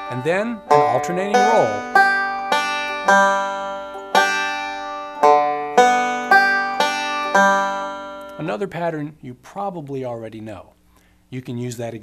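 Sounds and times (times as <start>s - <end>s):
banjo picked slowly: 0.0s - 8.6s.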